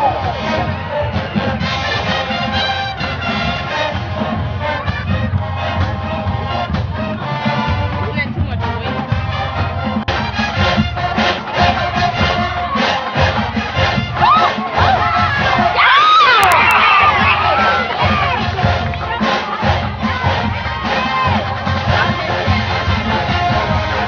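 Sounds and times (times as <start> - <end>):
marching band drum beat: 0.0 - 24.0
stadium crowd cheering and screaming: 11.4 - 24.0.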